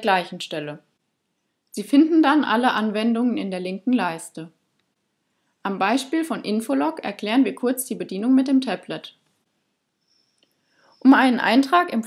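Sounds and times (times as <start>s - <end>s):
woman speaking: 0.0s - 0.9s, 1.8s - 4.6s, 5.7s - 9.2s, 11.0s - 12.0s
faint breath: 5.2s - 5.6s, 10.0s - 11.0s.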